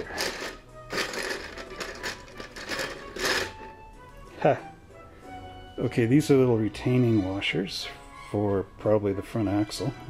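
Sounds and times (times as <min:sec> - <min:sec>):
plastic rustling and clicking: 0:00.0 - 0:03.6.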